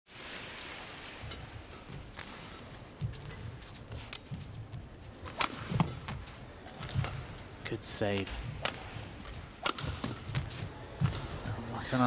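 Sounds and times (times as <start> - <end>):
rackets hitting shuttlecock: 5.2 - 7.5, 8.2 - 11.5.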